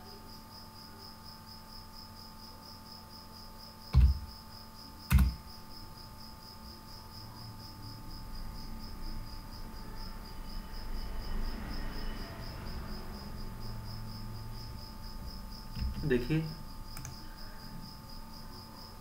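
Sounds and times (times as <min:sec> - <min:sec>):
low background hum: 0:00.0 - 0:19.0.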